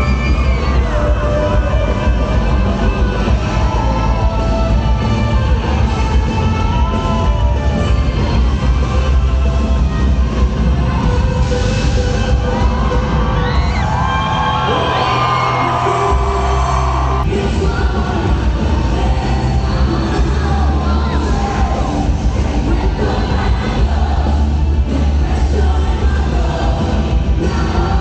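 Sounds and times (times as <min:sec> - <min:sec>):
crowd cheering and whooping: 0:00.0 - 0:08.0, 0:10.6 - 0:17.8
live band playing loud: 0:00.0 - 0:28.0.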